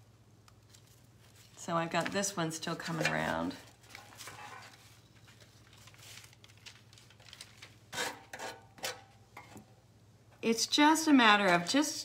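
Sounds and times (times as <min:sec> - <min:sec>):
handling craft materials: 0:00.5 - 0:08.1.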